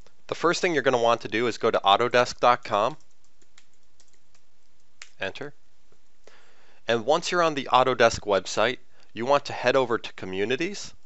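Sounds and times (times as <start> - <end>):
low hiss: 0.0 - 11.0.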